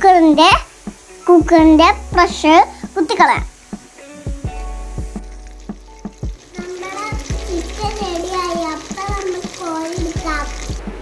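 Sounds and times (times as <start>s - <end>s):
chicken sizzling in oil: 0.0s - 11.0s
background music with beat: 0.6s - 11.0s.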